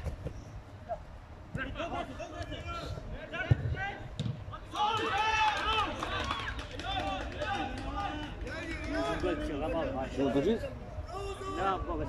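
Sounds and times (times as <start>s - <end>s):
football being kicked: 3.4s - 4.4s.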